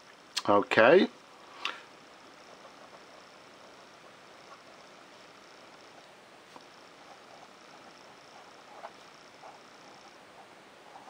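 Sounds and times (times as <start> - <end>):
pen nib scratching on paper: 2.4 - 3.4, 4.0 - 11.0.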